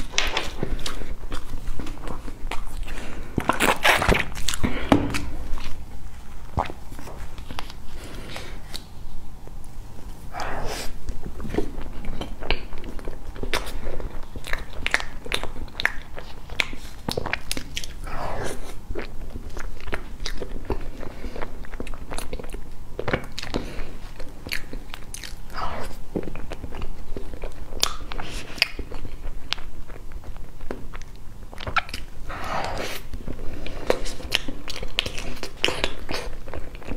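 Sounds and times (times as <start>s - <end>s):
chewing soft cake: 0.0s - 36.9s.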